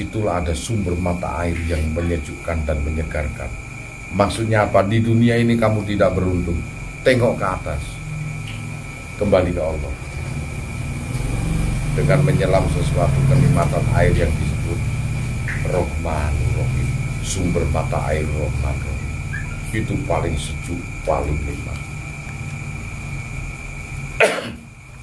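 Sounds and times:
even hiss: 0:00.0 - 0:25.0
faint high whine: 0:00.0 - 0:25.0
low mechanical hum: 0:00.0 - 0:25.0.

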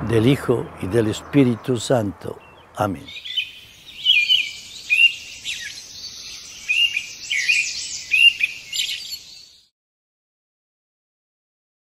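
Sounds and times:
small birds chirping: 0:00.0 - 0:09.7.

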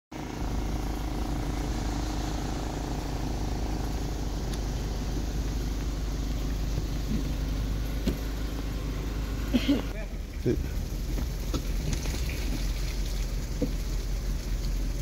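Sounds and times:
low rumble: 0:00.2 - 0:15.0.

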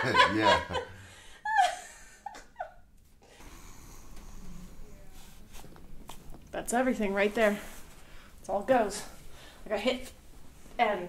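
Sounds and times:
person laughing: 0:00.0 - 0:02.8.

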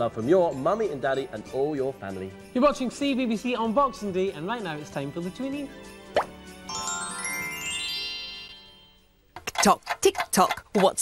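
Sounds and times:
bright chord with sparkly run: 0:05.8 - 0:09.1.

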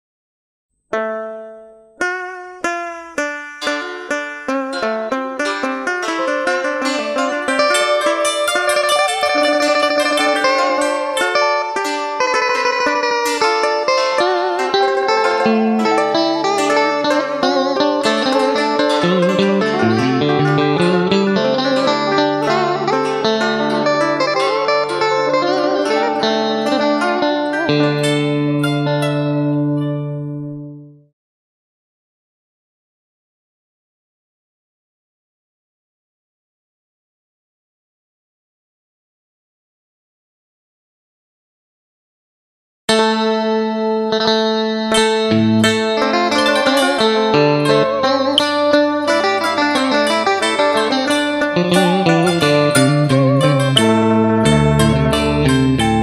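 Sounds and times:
plucked string instruments: 0:00.9 - 0:31.1, 0:42.9 - 0:56.0
low bass line: 0:19.0 - 0:26.6, 0:51.6 - 0:56.0.

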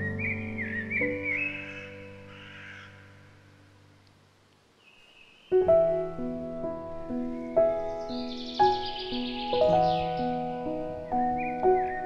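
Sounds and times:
piano chord: 0:00.0 - 0:02.4, 0:05.5 - 0:12.0
bird call: 0:00.0 - 0:03.5, 0:07.8 - 0:12.0.

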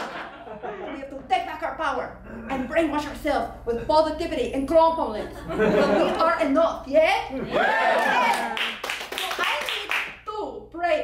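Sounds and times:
hand clapping: 0:08.0 - 0:10.2.

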